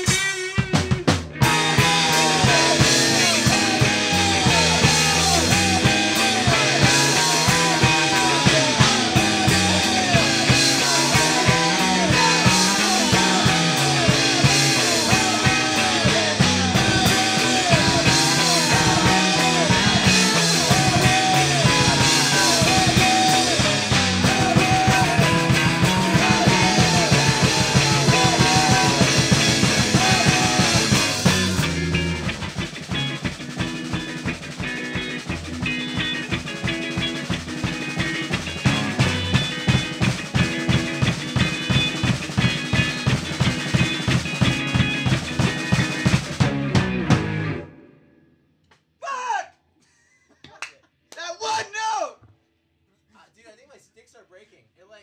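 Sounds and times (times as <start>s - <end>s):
drum beat: 0.0s - 47.4s
rock band playing live: 0.0s - 48.0s.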